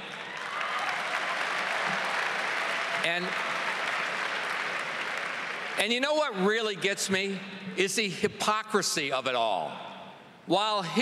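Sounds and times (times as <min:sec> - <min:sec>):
large audience applauding: 0:00.0 - 0:06.3.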